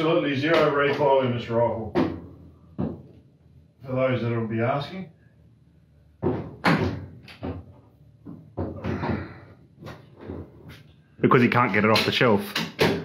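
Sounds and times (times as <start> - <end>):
knocks and clunks of handling: 1.9 - 3.3, 6.2 - 11.0, 11.6 - 13.0.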